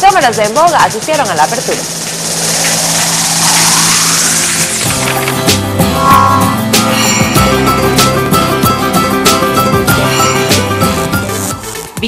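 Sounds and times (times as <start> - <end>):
whooshing hiss: 1.2 - 8.2
steady low drone: 1.8 - 11.3
music jingle: 4.6 - 11.7.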